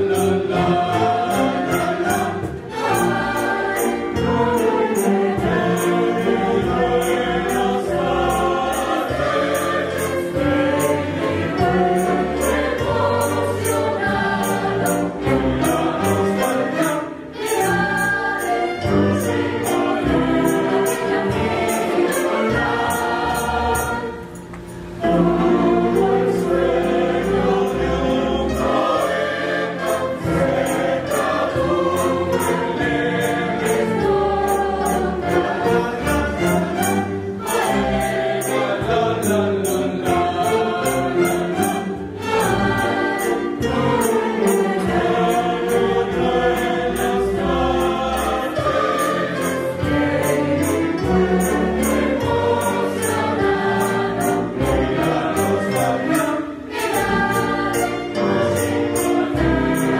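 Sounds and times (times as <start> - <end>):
mixed choir singing: 0.0 - 59.9
string orchestra: 0.0 - 59.9.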